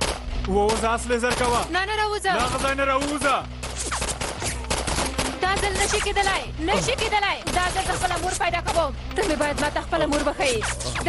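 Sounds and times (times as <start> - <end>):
rapid gunfire: 0.0 - 1.8, 2.4 - 11.0.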